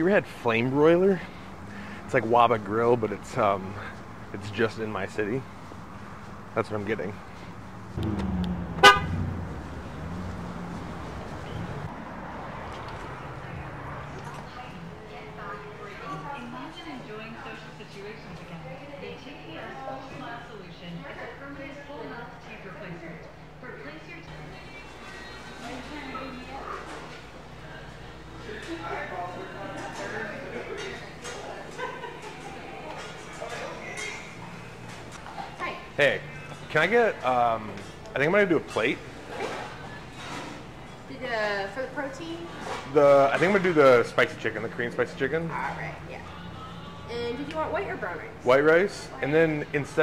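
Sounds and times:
car horn short chirp: 8.8s - 9.2s.

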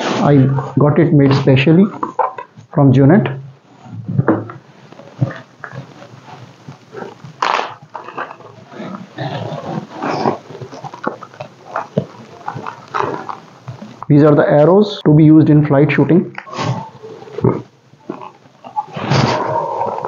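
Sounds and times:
wrapping rustling: 4.6s - 14.1s.

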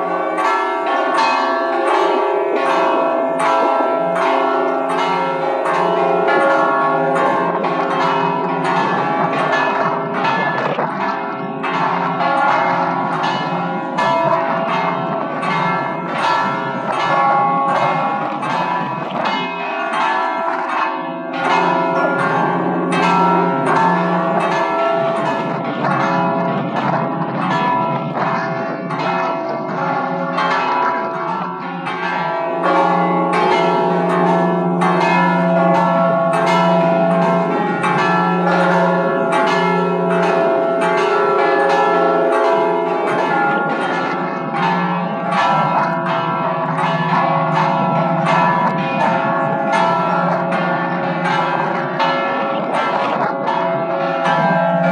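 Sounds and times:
church bells pealing: 0.0s - 54.9s.

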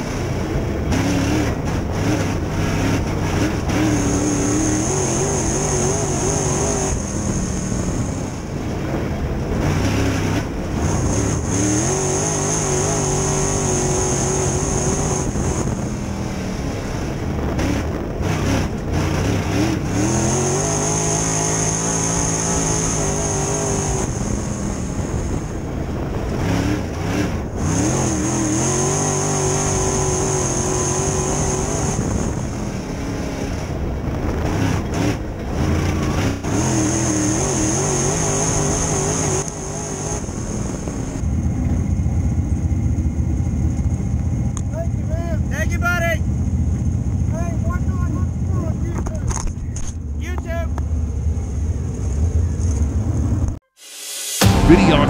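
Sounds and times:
racing car engine revving: 0.0s - 25.4s, 26.3s - 33.7s, 34.3s - 41.2s, 54.4s - 55.0s.

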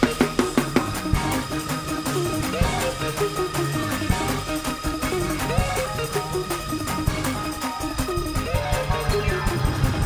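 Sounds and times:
drums steady beat: 0.0s - 10.0s
held keyboard chords: 0.0s - 10.0s.

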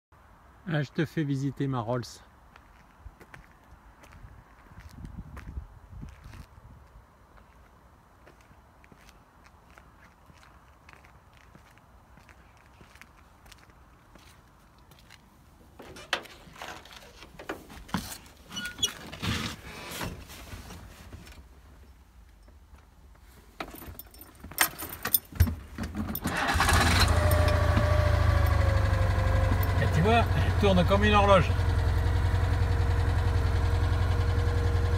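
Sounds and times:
car engine idling: 26.3s - 34.9s.

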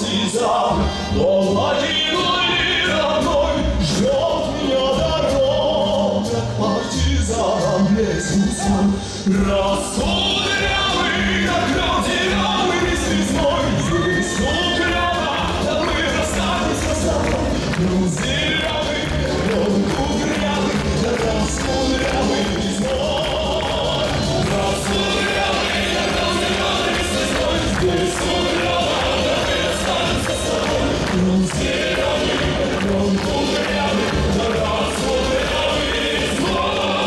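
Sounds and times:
choir-like voices: 0.0s - 37.0s
man singing into microphone: 0.0s - 37.0s
musical backing: 0.0s - 37.0s.

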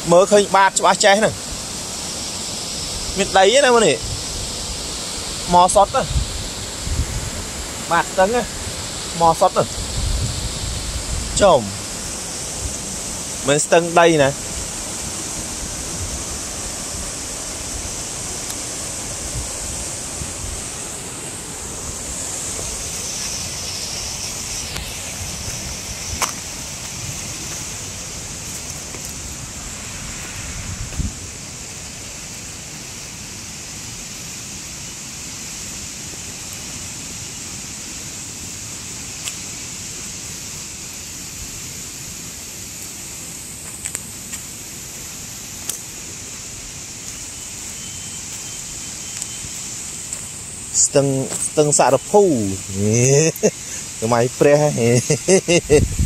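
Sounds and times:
river rushing over rock: 0.0s - 55.6s.

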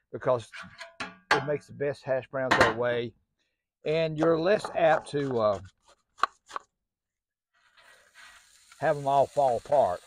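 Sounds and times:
hash browns sizzling on griddle: 7.6s - 10.0s.

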